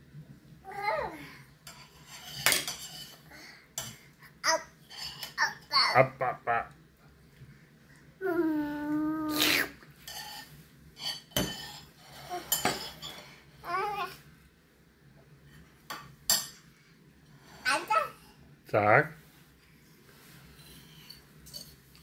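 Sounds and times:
utensils clinking on steel pot: 1.7s - 3.2s, 21.0s - 21.8s
toddler vocalizing: 8.2s - 9.8s.

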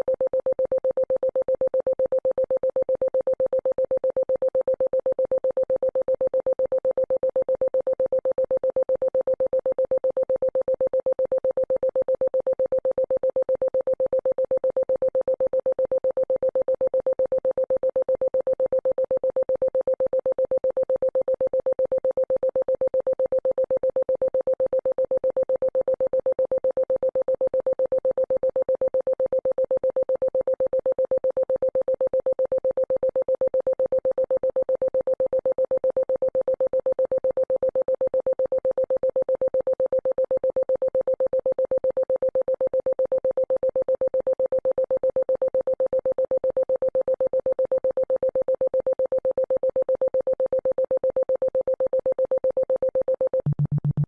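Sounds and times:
pulsing synthesized tone: 53.4s - 54.0s.

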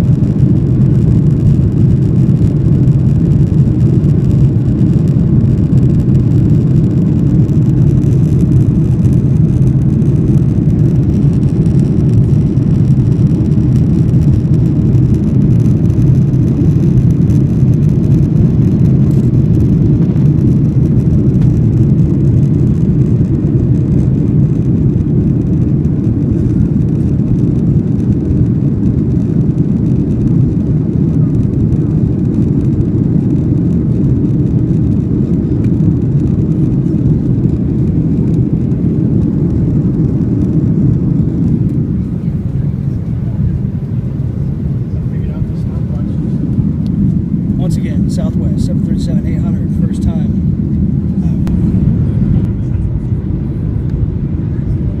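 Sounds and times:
jet engine cabin rumble: 0.0s - 55.0s.

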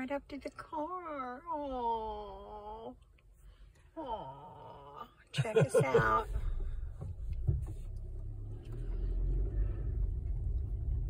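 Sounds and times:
car rumble from inside cabin: 3.9s - 11.0s.

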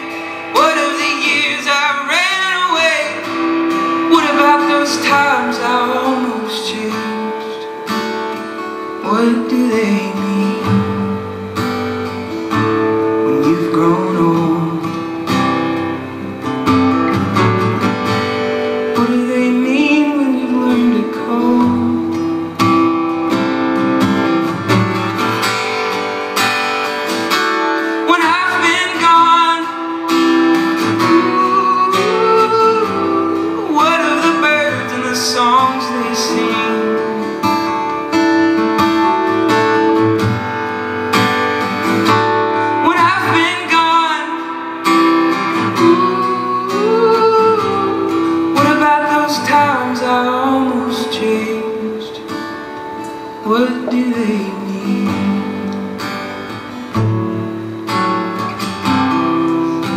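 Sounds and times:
man singing: 0.0s - 11.5s, 12.8s - 16.0s, 18.7s - 22.9s, 27.8s - 40.0s, 42.4s - 56.2s
acoustic guitar strumming: 0.0s - 59.9s.

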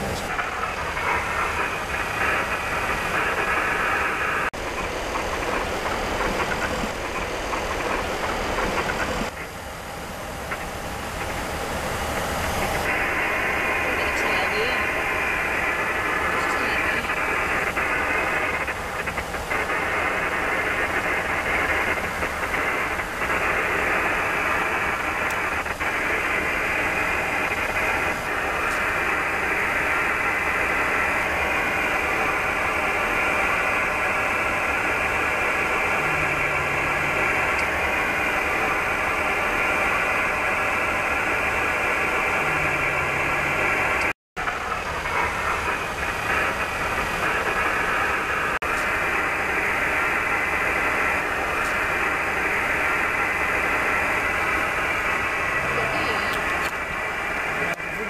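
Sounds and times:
radio static hiss: 0.0s - 9.6s, 10.2s - 58.0s.

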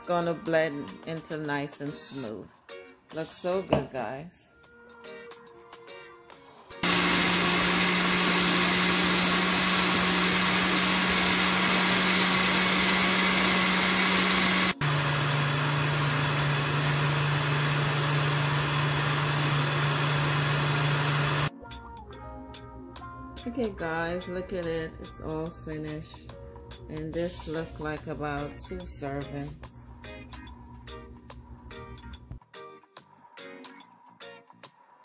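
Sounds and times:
blender whirring: 6.8s - 21.5s.

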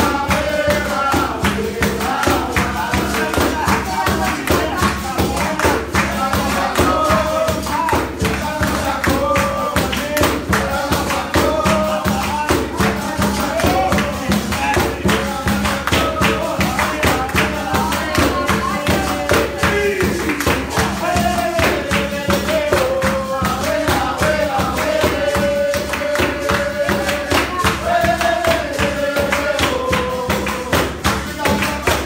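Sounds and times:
person singing: 0.0s - 32.0s
tambourine and percussion beat: 0.0s - 32.0s.

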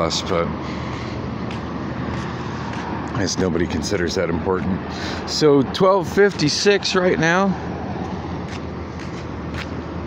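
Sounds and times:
low engine hum: 0.0s - 10.0s
road traffic rushing: 0.0s - 10.0s.

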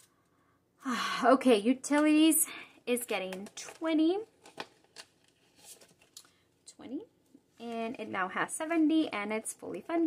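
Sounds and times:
paper rustling: 3.6s - 6.4s.

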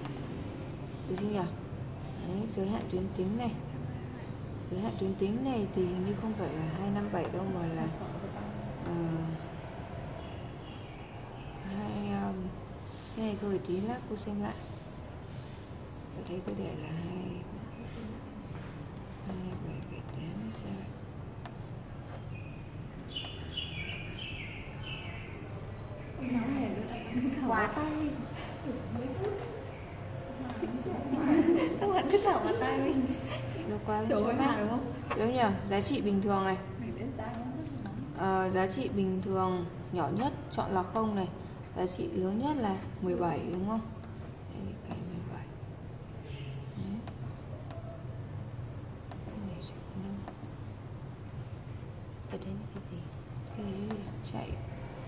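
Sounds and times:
keypad click: 0.0s - 1.4s, 18.8s - 22.3s, 34.9s - 35.4s, 43.4s - 45.4s, 46.8s - 50.8s
steady low hum: 0.0s - 55.0s
short high beeps: 26.8s - 27.4s, 34.9s - 35.2s
short high keypad beeps: 29.4s - 29.9s, 30.6s - 31.0s, 34.9s - 35.3s, 41.0s - 41.5s, 43.8s - 45.3s, 47.2s - 48.4s, 49.2s - 49.6s, 50.4s - 50.9s, 52.8s - 53.4s.

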